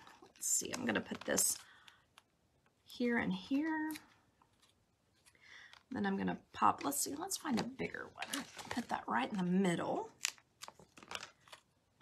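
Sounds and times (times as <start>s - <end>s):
paper crinkly clicks: 10.1s - 11.7s.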